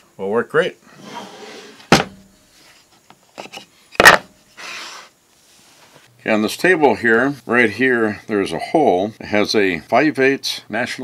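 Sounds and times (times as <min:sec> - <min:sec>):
wood scraping on wood: 0:00.9 - 0:03.7.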